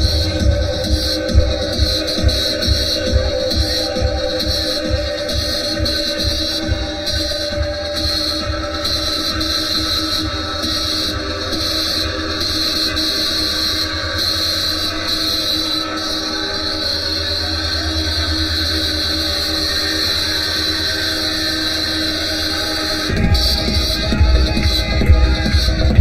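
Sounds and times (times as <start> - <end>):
low rumbling bass: 0.0 - 3.4, 23.1 - 26.0
synth drone: 0.0 - 26.0.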